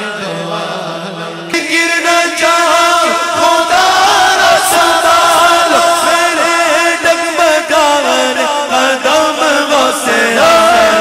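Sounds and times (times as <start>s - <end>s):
man chanting devotional song: 0.0s - 11.0s.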